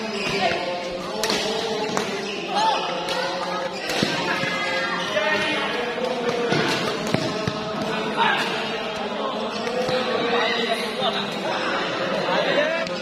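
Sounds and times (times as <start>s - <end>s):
voices of people: 0.0s - 13.0s
racket hitting shuttlecock: 1.2s - 2.2s.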